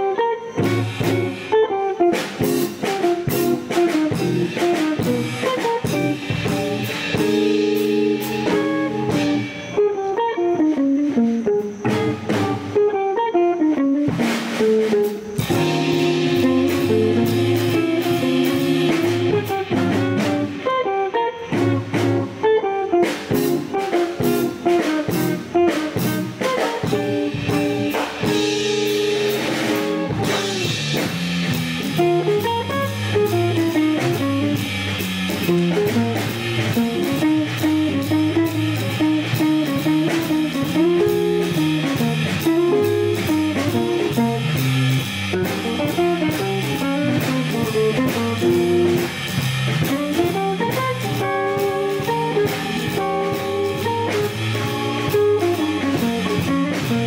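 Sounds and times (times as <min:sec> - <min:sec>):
drum kit: 0:00.0 - 0:57.0
electric guitar single-note lines: 0:00.0 - 0:57.0
organ: 0:00.0 - 0:57.0.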